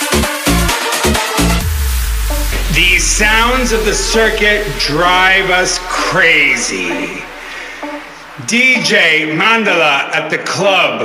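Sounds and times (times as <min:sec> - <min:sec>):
low bass drone: 0:01.5 - 0:09.8
man talking: 0:02.6 - 0:11.0.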